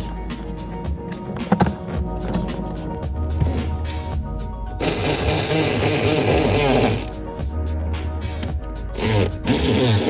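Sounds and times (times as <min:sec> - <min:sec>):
power tool motor running: 0:04.8 - 0:07.1, 0:09.0 - 0:10.0.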